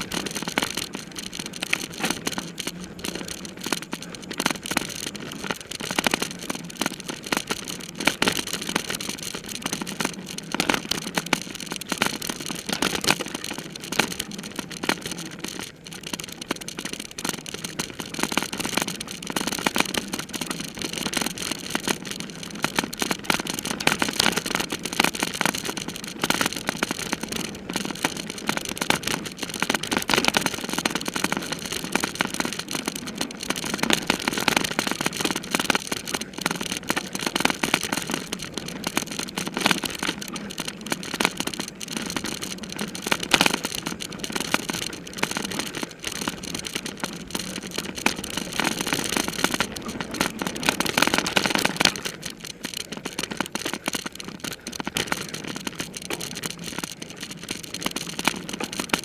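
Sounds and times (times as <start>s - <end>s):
bike rattling and clicking: 0.0s - 59.0s.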